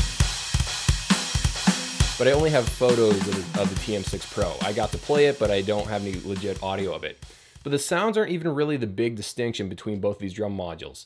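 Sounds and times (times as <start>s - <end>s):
electronic drum groove: 0.0s - 8.0s.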